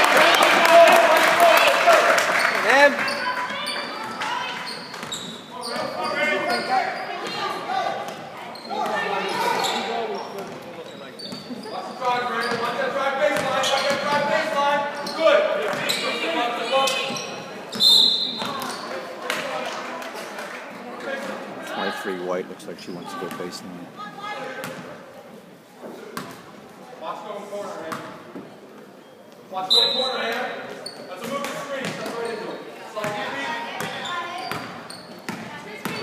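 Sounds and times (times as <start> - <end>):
spectators' voices echoing: 12.8 - 25.6.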